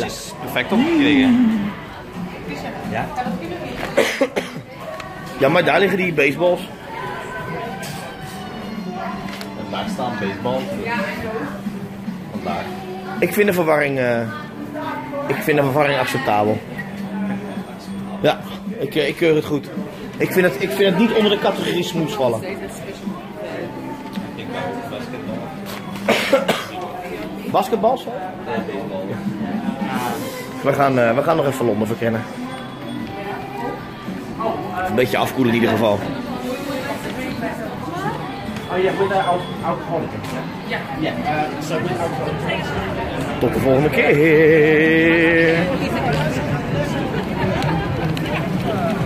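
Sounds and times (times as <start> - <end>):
faint background chatter: 0.0 - 49.0
background voices: 0.7 - 2.1
person coughing: 4.0 - 4.6, 26.1 - 26.8.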